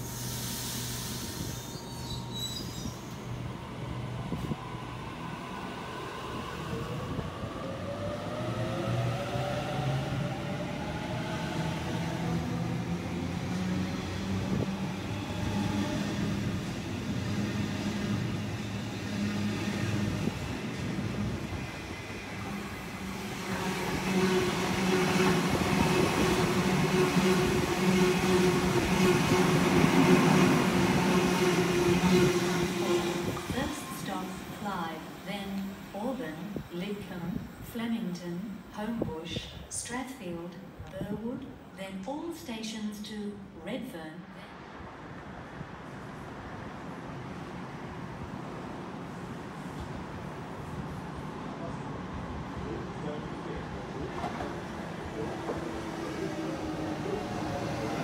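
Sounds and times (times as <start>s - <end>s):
train wheels rumbling on rails: 52.6s - 58.0s.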